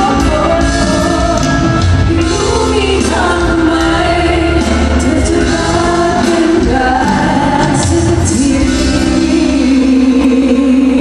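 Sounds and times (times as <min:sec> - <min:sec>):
musical accompaniment: 0:00.0 - 0:11.0
women singing pop live: 0:00.0 - 0:11.0.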